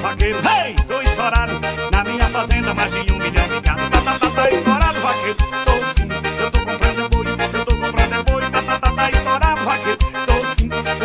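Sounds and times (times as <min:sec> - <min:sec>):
accordion melody: 0:00.0 - 0:11.0
bass and keyboard accompaniment: 0:00.0 - 0:11.0.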